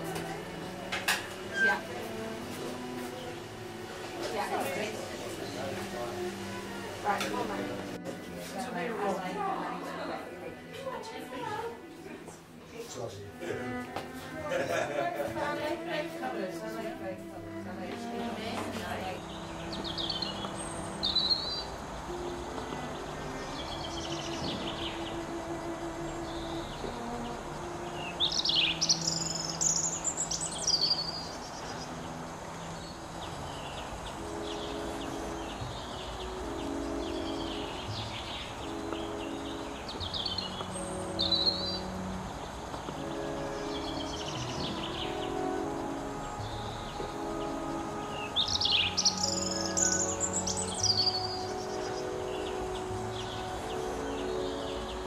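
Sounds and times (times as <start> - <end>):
songbird warbling and trilling: 0.0 - 8.0, 17.5 - 55.0
soft background music: 0.0 - 55.0
songbird trills and whistles: 28.0 - 32.0, 33.5 - 41.9, 48.1 - 55.0.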